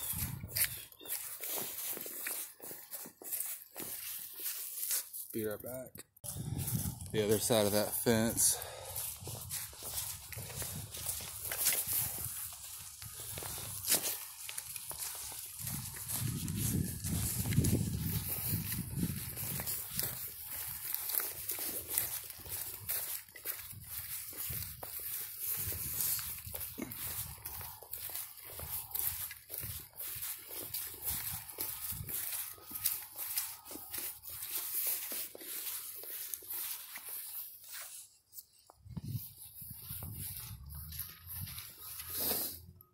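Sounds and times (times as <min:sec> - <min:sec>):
footsteps crunching through dry leaves: 0:00.0 - 0:42.7.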